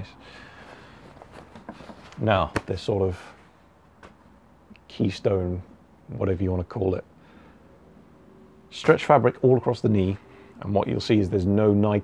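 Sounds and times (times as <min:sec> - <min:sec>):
low background hiss: 0:00.0 - 0:12.0
fabric rustling: 0:00.5 - 0:04.3.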